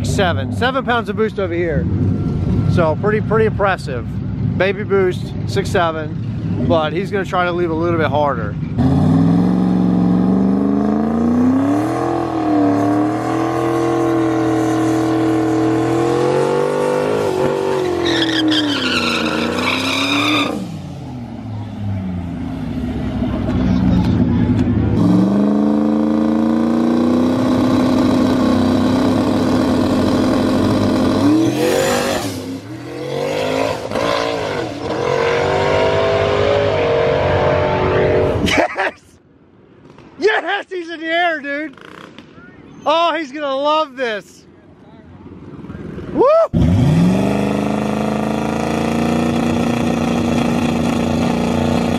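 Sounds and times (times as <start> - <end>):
car engines revving: 0.0 - 38.9, 39.7 - 44.4, 45.1 - 51.9.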